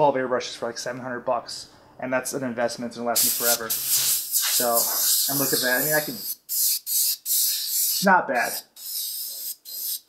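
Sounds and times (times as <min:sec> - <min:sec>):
airbrush hissing air: 0:03.2 - 0:10.0.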